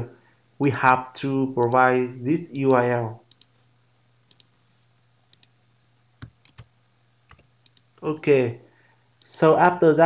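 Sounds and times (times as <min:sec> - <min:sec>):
faint steady hum: 0:00.0 - 0:10.0
computer mouse clicks: 0:02.7 - 0:03.6, 0:04.3 - 0:04.6, 0:05.3 - 0:05.6, 0:06.2 - 0:06.7, 0:07.3 - 0:08.0.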